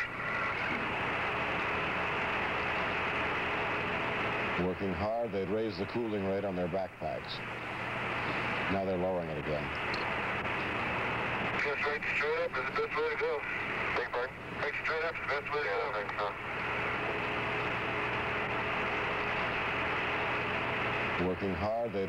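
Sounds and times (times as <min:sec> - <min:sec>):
radio hiss: 0:00.0 - 0:22.0
muffled voice over radio: 0:08.6 - 0:09.7, 0:11.5 - 0:16.5, 0:21.2 - 0:22.0.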